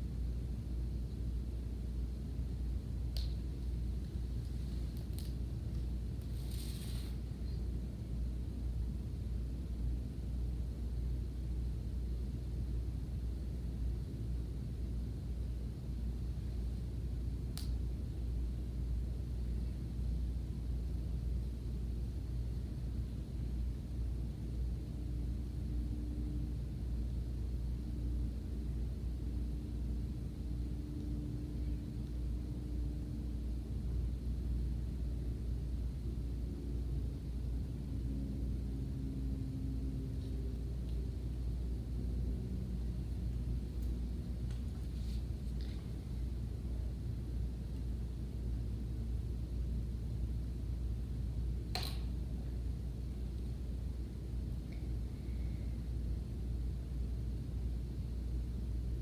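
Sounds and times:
low indoor room rumble: 0.0s - 59.0s.

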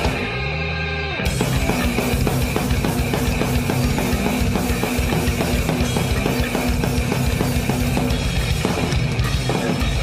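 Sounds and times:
rapid drum beat: 0.0s - 0.6s, 1.2s - 10.0s
electric guitars: 0.0s - 10.0s.

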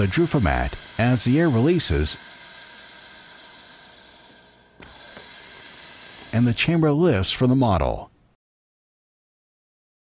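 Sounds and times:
compressed air hissing: 0.0s - 6.8s.

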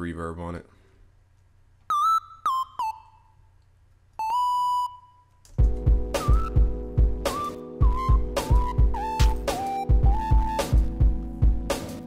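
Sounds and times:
kick drum pulsing: 5.6s - 11.7s.

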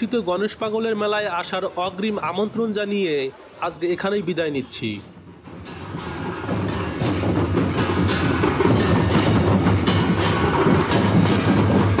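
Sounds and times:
barrel drum beaten with stick: 5.5s - 12.0s.

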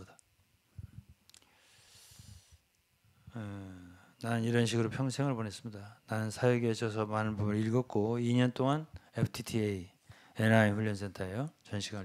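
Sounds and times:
soft breath-like hiss: 0.7s - 4.3s, 10.0s - 10.4s.

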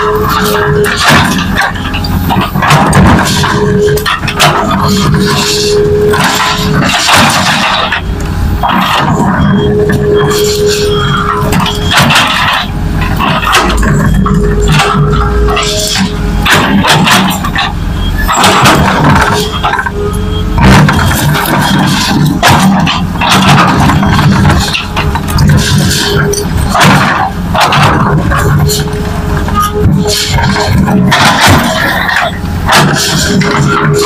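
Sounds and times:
diesel engines running: 0.0s - 34.0s.

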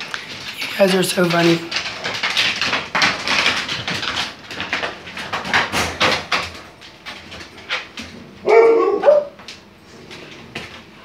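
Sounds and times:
dog barking: 8.4s - 9.4s.

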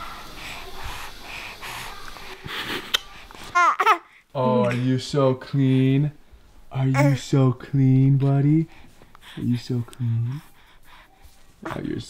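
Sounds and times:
baby breathing softly: 0.0s - 4.3s, 5.5s - 12.0s
baby cooing: 2.9s - 4.2s, 6.8s - 7.3s.

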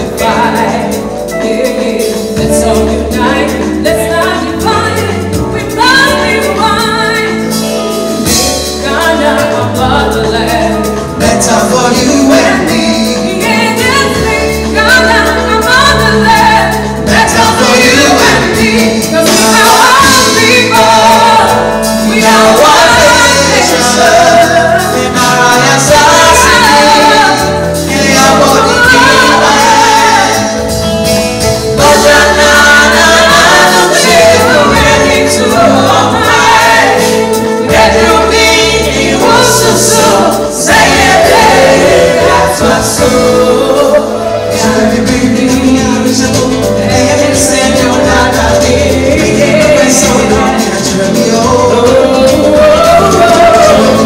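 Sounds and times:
backing vocalists: 0.0s - 54.0s
live band playing: 0.0s - 54.0s
woman singing lead: 0.0s - 54.0s.

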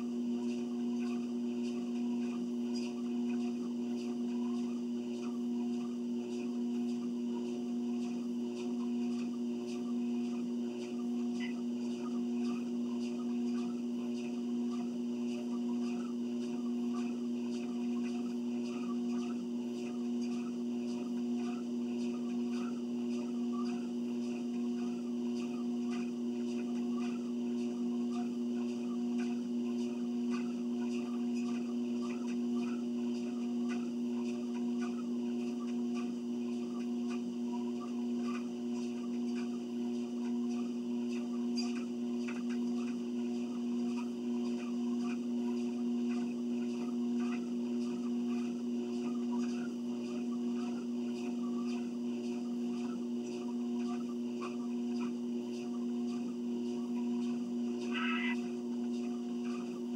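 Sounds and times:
treadmill motor hum: 0.0s - 59.9s.

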